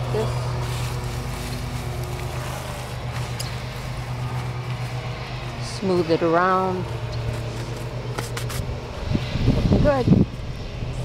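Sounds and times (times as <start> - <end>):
woman speaking: 0.0 - 0.5, 5.6 - 6.9, 9.8 - 10.1
hands smoothing soil: 0.0 - 8.7
steady low hum: 0.0 - 11.0.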